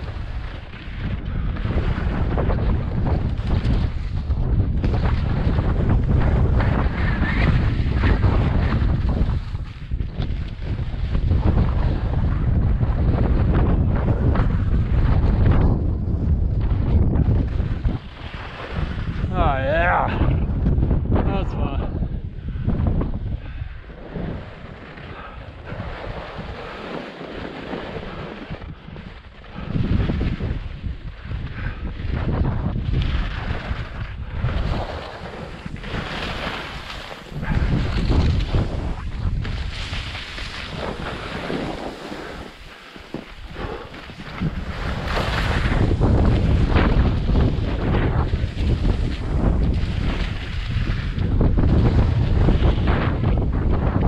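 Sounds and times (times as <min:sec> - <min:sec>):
skis scraping over snow: 0:00.0 - 0:19.3, 0:24.0 - 0:30.9, 0:31.6 - 0:54.0
wind buffeting microphone: 0:00.0 - 0:54.0
skis hissing and scraping on snow: 0:25.9 - 0:28.4, 0:34.7 - 0:46.7.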